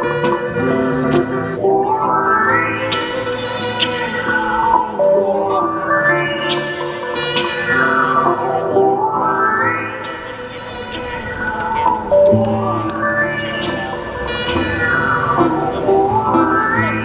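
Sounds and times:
bass line: 0.0s - 17.0s.

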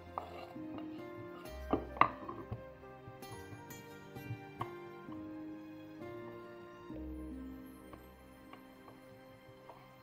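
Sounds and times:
knife scraping cutting board: 0.0s - 2.4s
background music: 0.0s - 10.0s.

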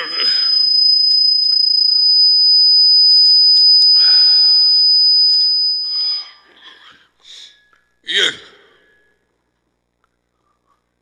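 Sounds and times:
faint voice: 0.0s - 0.5s
high-pitched tone: 0.0s - 6.5s.

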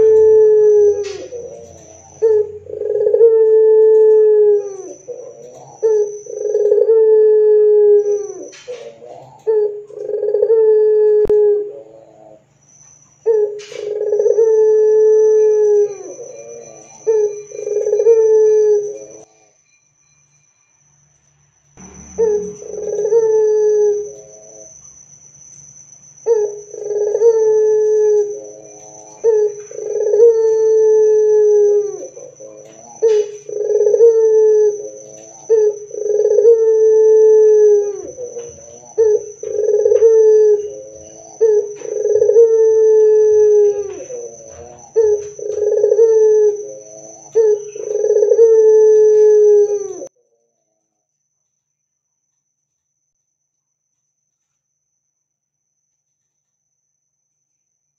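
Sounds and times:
dove cooing: 0.0s - 12.5s, 13.2s - 19.3s, 21.8s - 24.8s, 26.2s - 50.1s.

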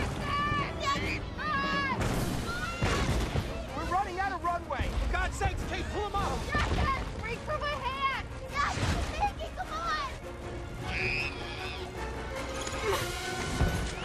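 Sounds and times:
people shouting and screaming: 0.0s - 3.7s, 10.8s - 12.1s
dramatic music: 0.0s - 14.0s
child screaming: 10.9s - 12.0s.

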